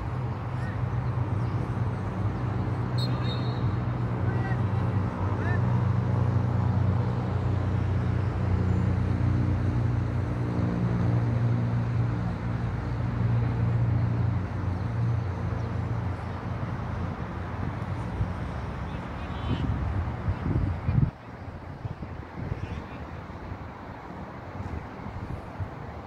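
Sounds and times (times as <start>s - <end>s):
motor vehicle engine humming: 0.0s - 22.0s.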